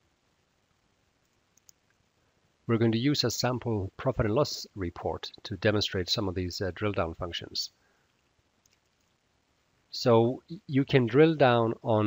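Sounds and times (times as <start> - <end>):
computer mouse clicks: 1.2 - 2.0, 8.6 - 9.2.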